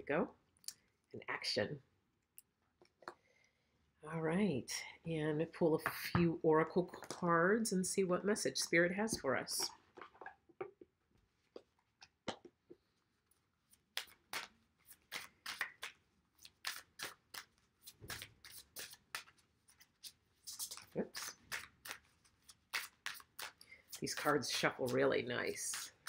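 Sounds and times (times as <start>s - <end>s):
cards being shuffled: 13.7s - 26.0s.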